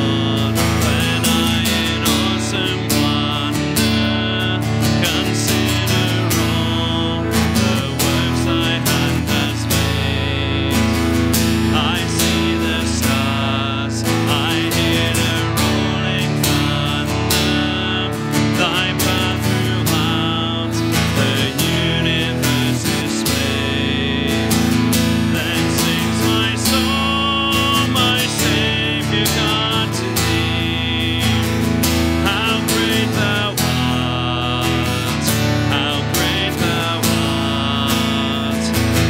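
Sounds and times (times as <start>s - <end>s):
voices singing a hymn: 0.0s - 10.8s, 11.6s - 39.0s
acoustic guitar strumming: 0.0s - 39.0s.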